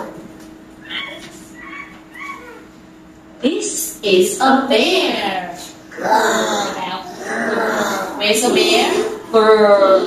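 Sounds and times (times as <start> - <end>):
imitated monkey squealing calls: 0.8 - 2.7.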